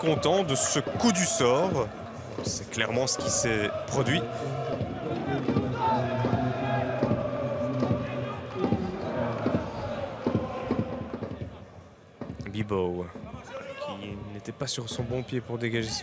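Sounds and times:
crowd singing and shouting: 0:00.0 - 0:11.8.

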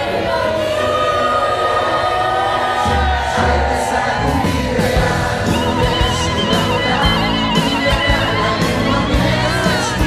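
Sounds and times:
choir singing sustained lines: 0:00.0 - 0:10.0
deep bass notes: 0:03.2 - 0:10.0.

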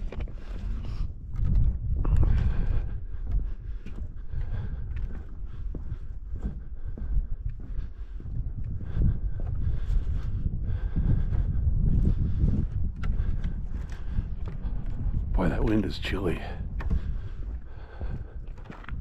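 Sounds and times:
footsteps on snow and boards: 0:00.0 - 0:19.0
wind buffeting microphone: 0:00.0 - 0:19.0.

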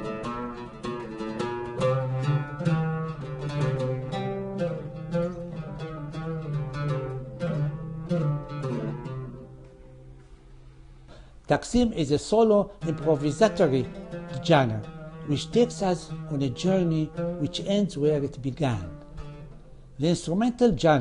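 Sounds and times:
oud plucked notes: 0:00.0 - 0:21.0.

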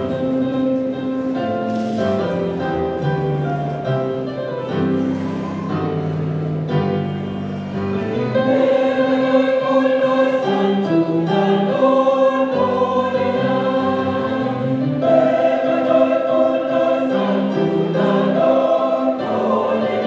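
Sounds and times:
choir singing in harmony: 0:04.9 - 0:20.0.

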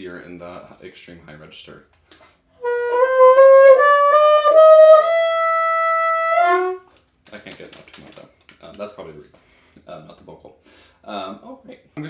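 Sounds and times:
bassoon playing high notes: 0:02.6 - 0:06.9.

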